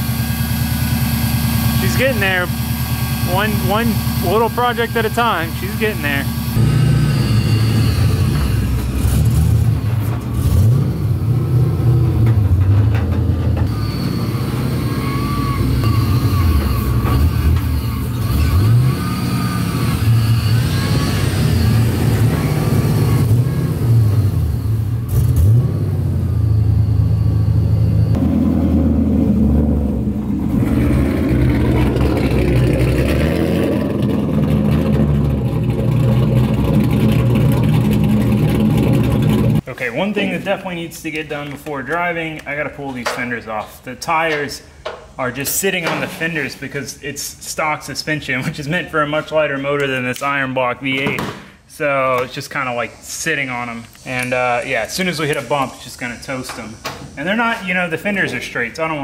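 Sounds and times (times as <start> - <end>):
car engine idling and revving: 0.0 - 39.7.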